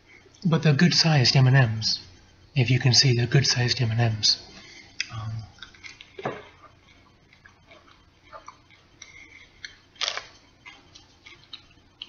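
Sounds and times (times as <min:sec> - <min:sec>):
candy cracking: 0:05.0 - 0:11.8
candy shell crunching: 0:06.8 - 0:12.0.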